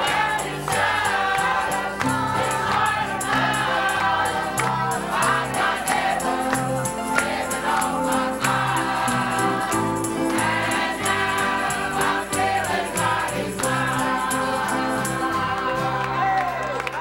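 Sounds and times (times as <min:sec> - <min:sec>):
instrumental accompaniment with bass: 0:00.0 - 0:16.6
group singing gospel song: 0:00.0 - 0:16.9.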